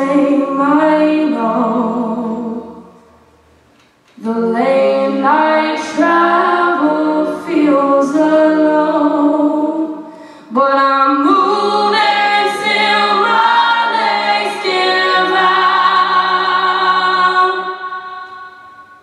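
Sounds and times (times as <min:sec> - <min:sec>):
women singing a cappella harmony: 0:00.0 - 0:03.1, 0:04.2 - 0:19.0.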